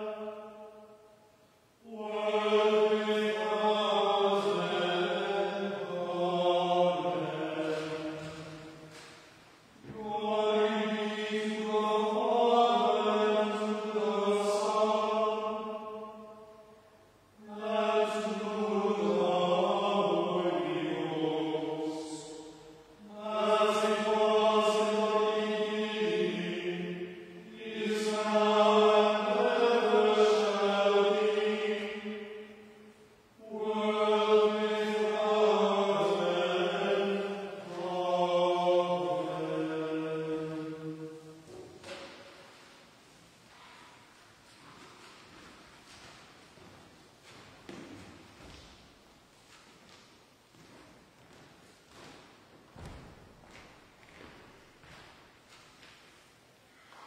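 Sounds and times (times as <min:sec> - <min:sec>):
group of voices chanting plainsong: 0:17.4 - 0:32.8, 0:33.4 - 0:42.2.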